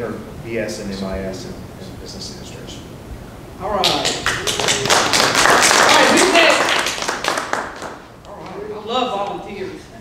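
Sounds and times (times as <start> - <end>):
crowd clapping: 3.8 - 8.1.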